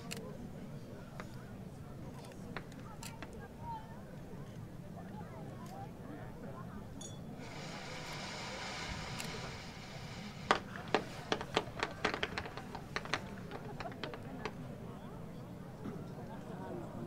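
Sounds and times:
firework hissing: 0:07.3 - 0:14.8
firework shells bursting: 0:07.4 - 0:14.9.

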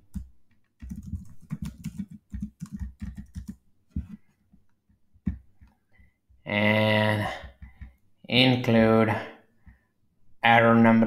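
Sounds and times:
keyboard typing: 0:00.0 - 0:04.4.

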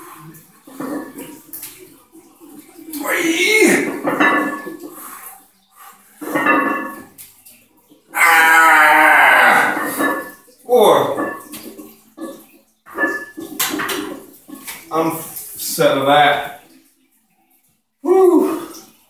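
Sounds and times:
man grunting: 0:03.0 - 0:04.0, 0:08.2 - 0:09.9, 0:18.0 - 0:18.8
man groaning strained: 0:08.2 - 0:10.0, 0:18.0 - 0:18.8.

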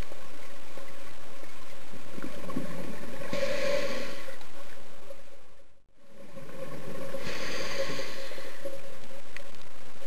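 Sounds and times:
low hiss: 0:00.0 - 0:10.0
steady underwater hum: 0:00.0 - 0:10.0.

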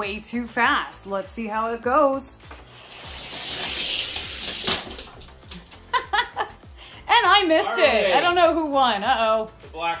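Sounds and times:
toy cars rolling down plastic track: 0:02.7 - 0:05.4.

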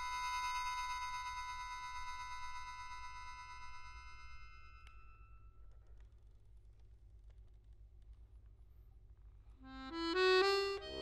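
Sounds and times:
accordion chord: 0:09.7 - 0:11.0.

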